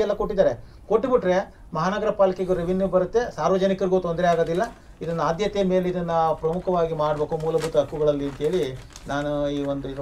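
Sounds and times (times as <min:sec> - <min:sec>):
man speaking in a low voice: 0:00.0 - 0:10.0.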